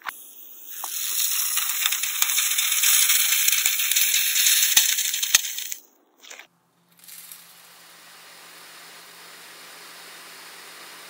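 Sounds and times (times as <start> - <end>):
loud foam hiss: 0.0 - 5.8.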